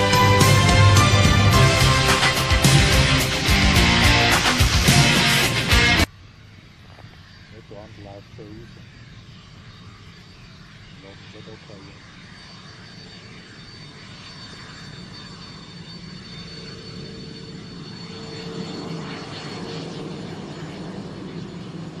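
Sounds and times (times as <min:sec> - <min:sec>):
jet engines rumbling with whine: 0:00.0 - 0:22.0.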